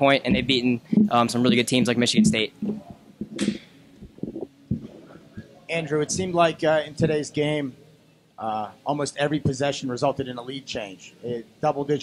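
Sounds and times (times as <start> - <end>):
microphone being handled: 2.2 - 5.6.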